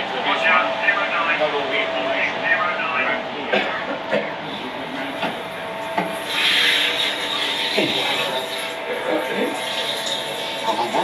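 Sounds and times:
voices talking indistinctly: 0.0s - 11.0s.

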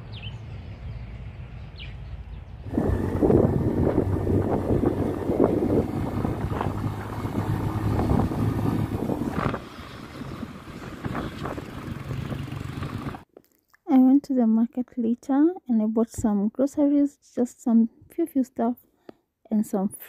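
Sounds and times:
low engine hum: 0.0s - 13.2s
road noise: 0.0s - 13.3s
wind buffeting microphone: 2.4s - 13.2s.

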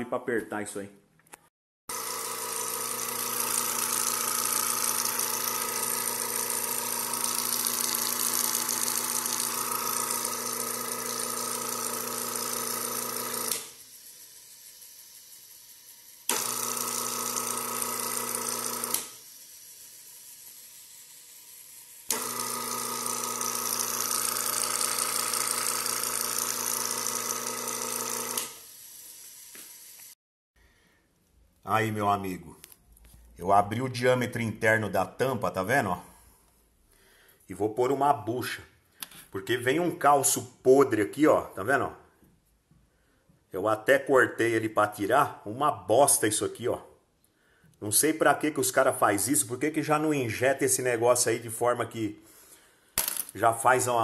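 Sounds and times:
electric motor humming: 1.9s - 30.2s.

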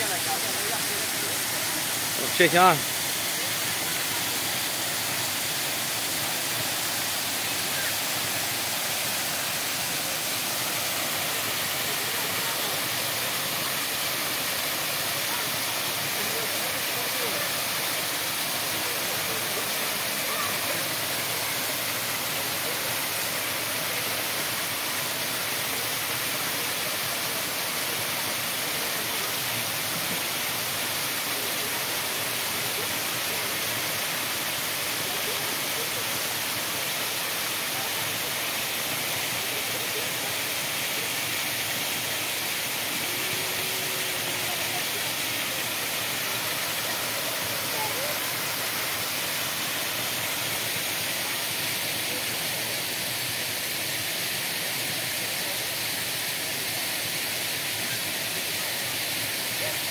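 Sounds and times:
waterfall splashing into pool: 0.0s - 59.9s.

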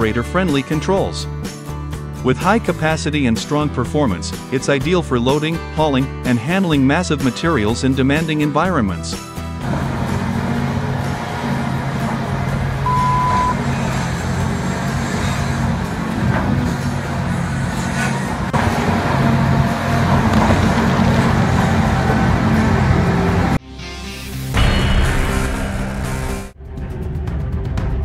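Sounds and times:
diesel engine running under load: 9.4s - 23.6s
short beep: 12.8s - 13.6s.

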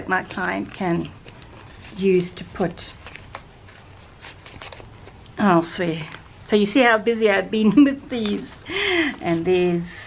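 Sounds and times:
paper rustling: 0.0s - 6.6s.

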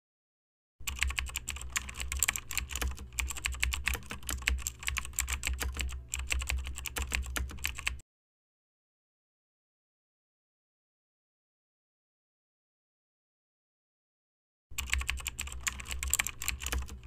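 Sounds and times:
keyboard key clicks: 0.9s - 8.0s.

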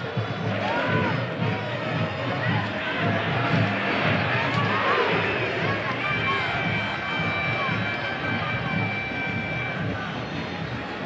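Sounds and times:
stadium crowd roar: 0.0s - 11.0s.

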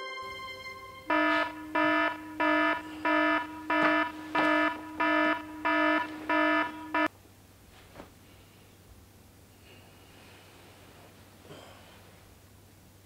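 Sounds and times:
phone alarm beeping: 0.7s - 7.1s.

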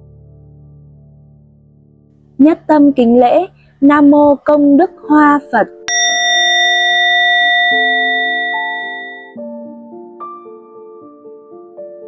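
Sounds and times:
soft keyboard music: 0.0s - 12.0s
prayer bell ringing: 5.9s - 9.4s.

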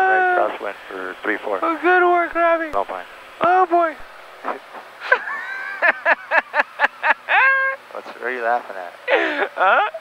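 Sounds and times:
person laughing: 5.0s - 7.8s, 9.1s - 10.0s.

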